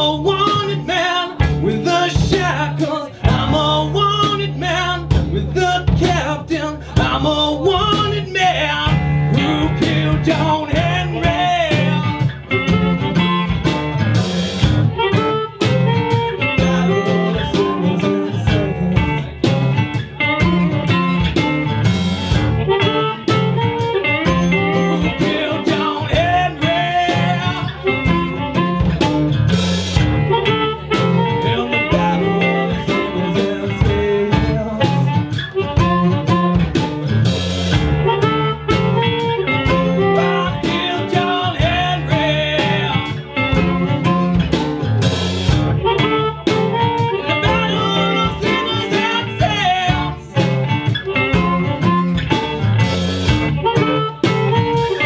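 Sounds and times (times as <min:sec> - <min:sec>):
acoustic guitar: 0:00.0 - 0:55.0
drum kit steady beat: 0:00.0 - 0:55.0
electric guitars: 0:00.0 - 0:55.0.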